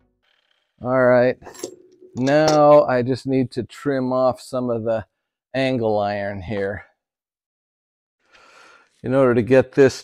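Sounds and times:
hand tool clinking on bench: 1.5 - 2.9
man speaking: 2.2 - 5.0.

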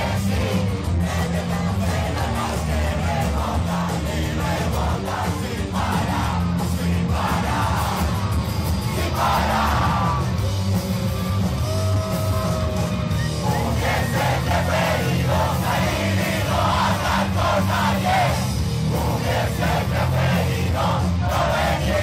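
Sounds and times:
crowd yelling along: 0.0 - 22.0
punk rock band playing live: 0.0 - 22.0
shouted vocals: 11.6 - 18.4.

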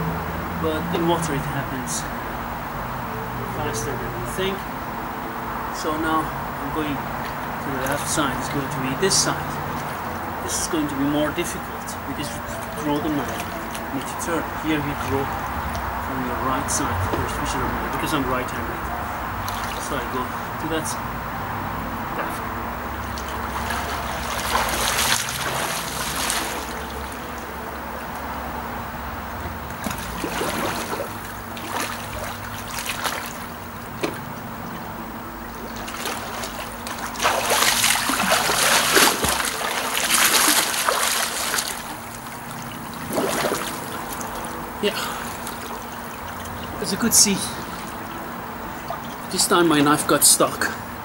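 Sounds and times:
water splashing from swimmer: 12.6 - 15.1, 23.1 - 27.3, 29.7 - 34.4, 35.4 - 50.0.

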